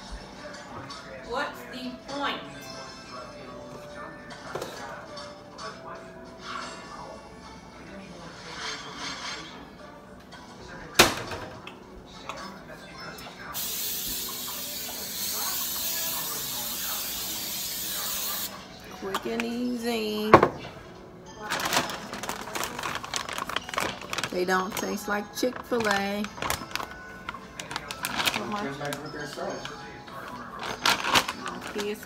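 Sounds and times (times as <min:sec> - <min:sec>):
background music: 0:00.0 - 0:32.0.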